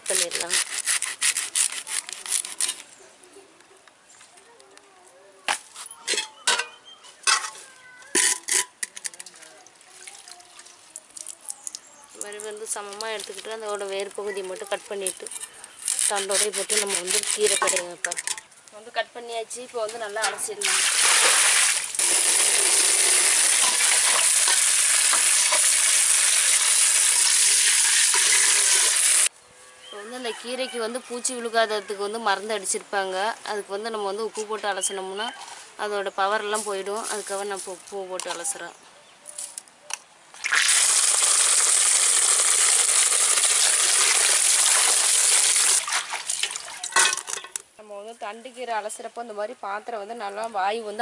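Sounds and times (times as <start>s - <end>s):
water rushing out of a bucket: 20.6s - 29.3s, 40.4s - 46.9s.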